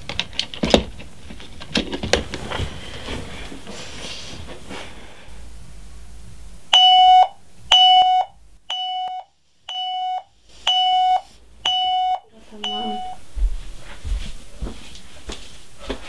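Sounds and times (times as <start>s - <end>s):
alarm clock beeping: 6.7s - 13.2s.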